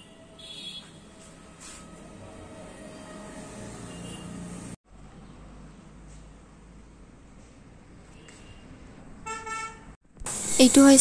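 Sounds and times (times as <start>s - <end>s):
vehicle horn honking: 0.0s - 1.2s, 3.8s - 4.6s, 8.2s - 9.9s.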